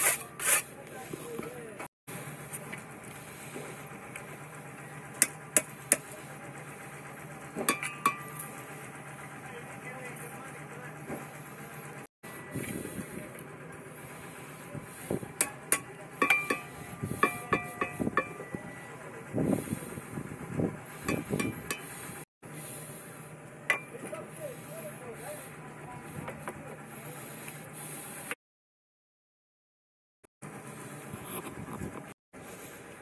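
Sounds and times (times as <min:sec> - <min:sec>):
concrete blocks tapped with metallic ring: 0:15.8 - 0:18.5.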